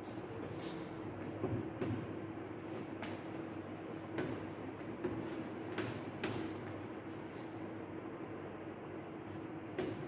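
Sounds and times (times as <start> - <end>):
steady low hum: 0.0 - 10.0
chalk scraping on blackboard: 4.2 - 6.5.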